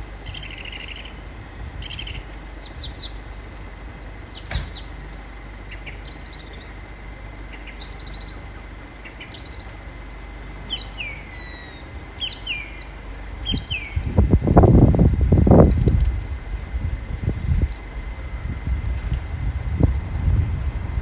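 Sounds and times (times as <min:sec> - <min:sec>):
songbirds chirping and trilling: 0:00.0 - 0:20.9
low background rumble: 0:00.0 - 0:21.0.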